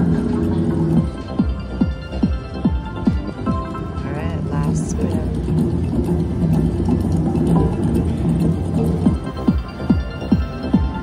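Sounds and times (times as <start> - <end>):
slot machine electronic melody: 0.0 - 11.0.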